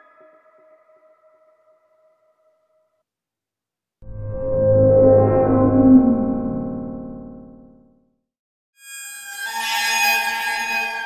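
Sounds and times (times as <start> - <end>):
bright synth chord: 4.0 - 8.0
electronic tone with pitch glide: 4.0 - 8.0.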